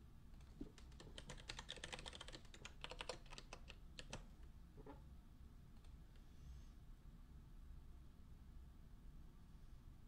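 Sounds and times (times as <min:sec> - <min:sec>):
typing on computer keyboard: 0:00.4 - 0:04.3.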